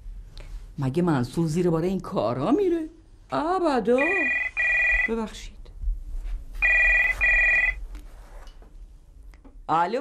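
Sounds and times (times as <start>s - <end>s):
telephone ringing: 4.0s - 5.2s, 6.6s - 7.8s.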